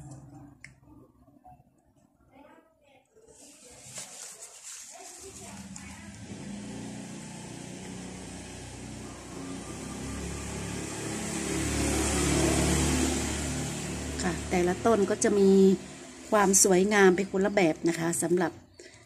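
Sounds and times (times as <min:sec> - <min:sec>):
vehicle engine running: 0:05.2 - 0:18.6.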